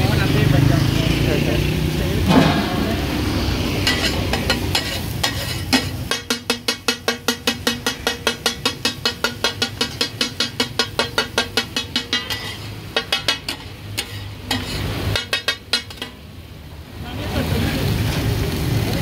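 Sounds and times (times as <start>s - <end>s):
meat sizzling: 0.0s - 19.0s
metal spatulas striking iron griddle: 2.2s - 16.2s.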